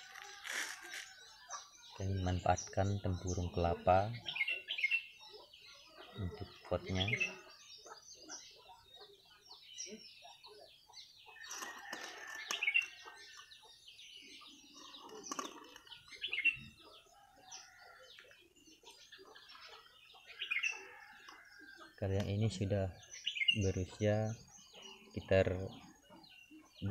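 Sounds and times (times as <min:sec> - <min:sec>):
birds chirping and calling: 0:00.0 - 0:26.9.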